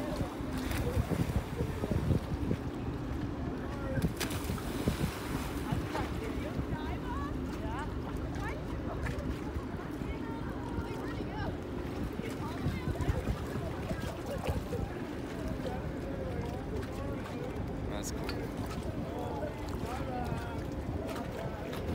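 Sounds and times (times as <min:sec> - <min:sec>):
wind buffeting microphone: 0:00.0 - 0:17.6
water lapping: 0:00.0 - 0:21.9.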